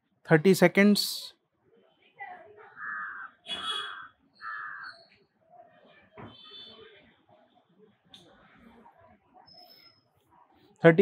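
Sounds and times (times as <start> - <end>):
faint outdoor background: 0.0 - 11.0
crow cawing: 2.7 - 5.1.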